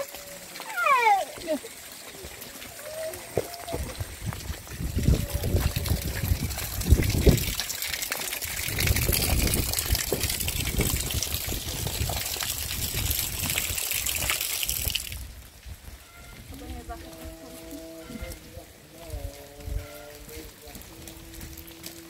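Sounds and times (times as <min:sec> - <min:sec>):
rain hissing: 0:00.0 - 0:15.9, 0:16.6 - 0:22.0
wind buffeting microphone: 0:03.2 - 0:21.6.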